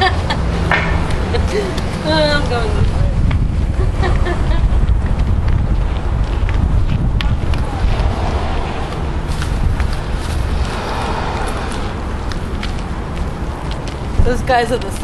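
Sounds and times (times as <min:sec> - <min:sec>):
wind rumble on microphone: 0:00.0 - 0:15.0
light footstep clicks: 0:00.7 - 0:08.1, 0:08.9 - 0:15.0.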